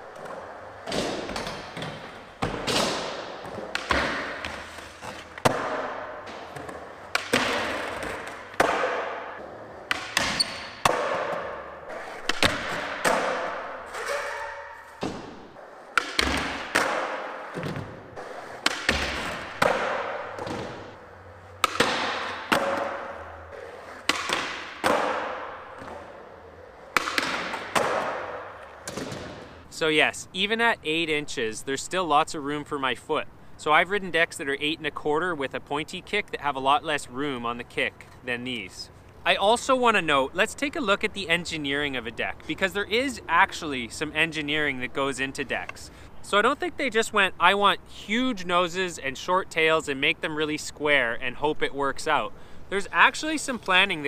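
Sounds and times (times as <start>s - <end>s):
skateboard wheels rolling: 0.0s - 29.6s.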